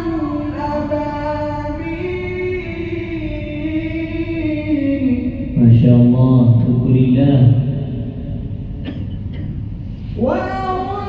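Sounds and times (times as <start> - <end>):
deep chanted recitation: 0.0 - 9.0, 10.0 - 11.0
low steady hum: 0.0 - 11.0.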